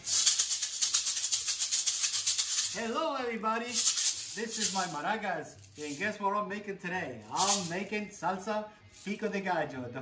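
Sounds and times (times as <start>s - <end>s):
maracas shaking: 0.0s - 6.2s, 7.0s - 8.2s, 8.8s - 9.4s.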